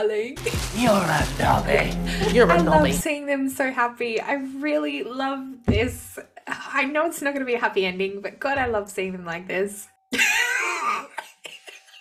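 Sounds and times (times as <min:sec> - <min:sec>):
person laughing: 0:02.1 - 0:03.0, 0:10.1 - 0:12.0.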